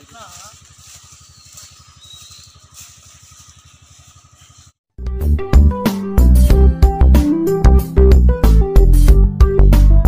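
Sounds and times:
small engine puttering: 0.0s - 4.8s.

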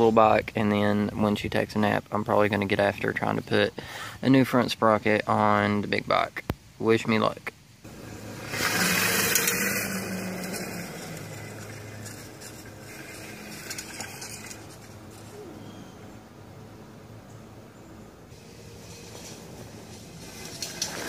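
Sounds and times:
small motorbike engine: 7.9s - 15.4s, 18.3s - 21.0s.

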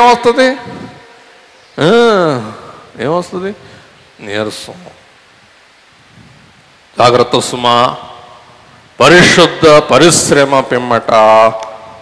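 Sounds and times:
faint microphone hiss: 0.0s - 12.0s.

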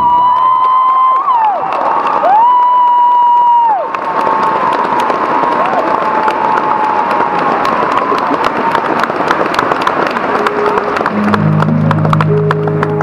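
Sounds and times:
audience applauding and cheering: 0.0s - 13.0s.

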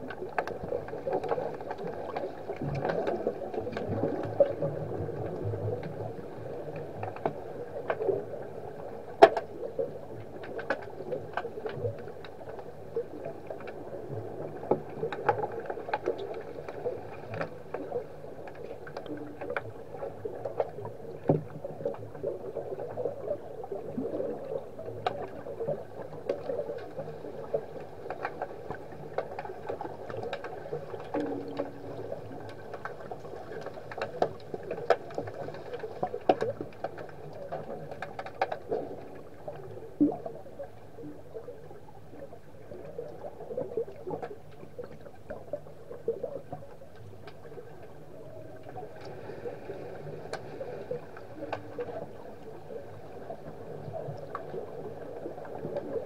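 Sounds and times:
muffled water wash underwater: 0.0s - 56.0s.

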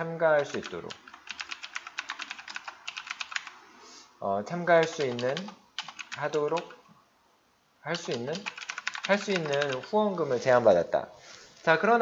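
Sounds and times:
fast typing on keyboard: 0.4s - 3.6s, 4.8s - 6.8s, 7.9s - 9.9s.

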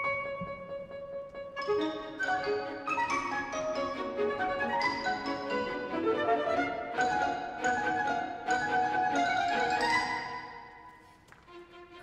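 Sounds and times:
orchestra with bowed strings: 0.0s - 12.0s.

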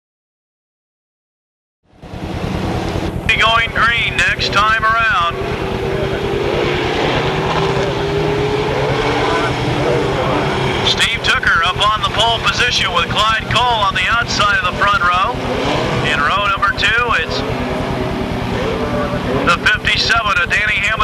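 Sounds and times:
race car engines droning: 1.9s - 21.0s.

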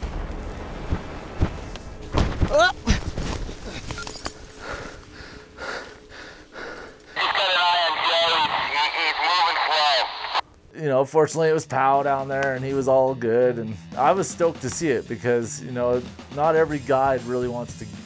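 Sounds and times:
voice over two-way radio: 7.2s - 10.4s.

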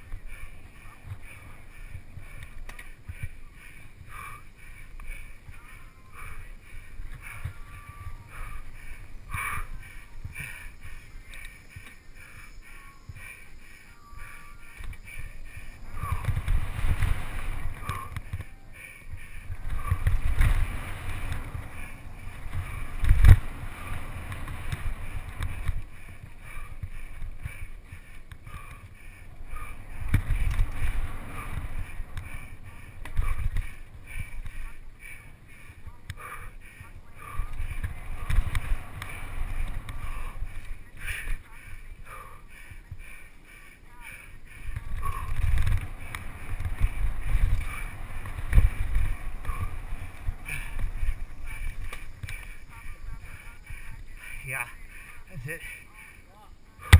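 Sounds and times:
wind rumbling on microphone: 0.0s - 56.9s.

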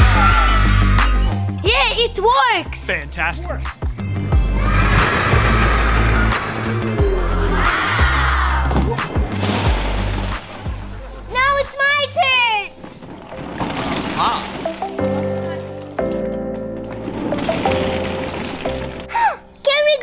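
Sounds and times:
music with pulsing bass: 0.0s - 2.2s, 2.8s - 11.4s.

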